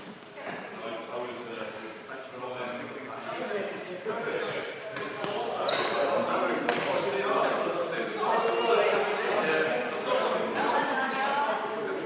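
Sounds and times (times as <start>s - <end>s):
shoe squeaking on court floor: 5.0s - 6.4s.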